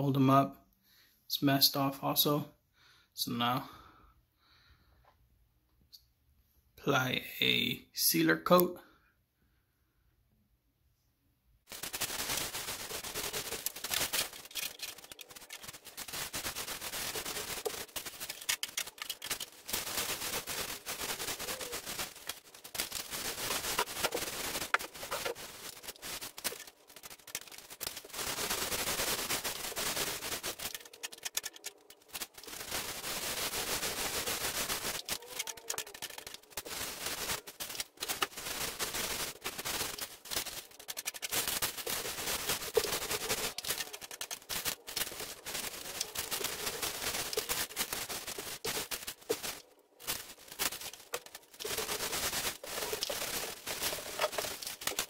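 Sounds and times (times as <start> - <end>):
paint roller crackling on ceiling: 11.7 - 55.0.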